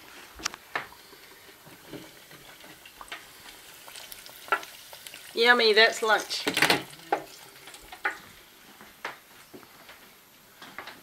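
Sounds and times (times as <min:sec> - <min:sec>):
food deep-frying in oil: 0:00.0 - 0:08.4.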